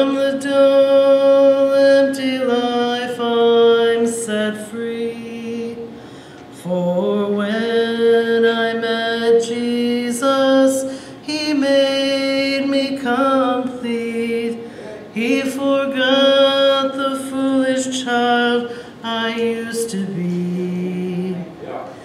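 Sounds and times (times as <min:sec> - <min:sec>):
woman singing gospel song: 0:00.0 - 0:21.6.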